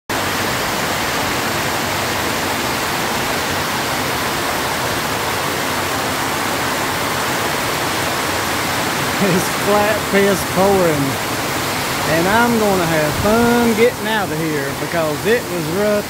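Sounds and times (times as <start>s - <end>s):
heavy rain pouring: 0.1s - 16.0s.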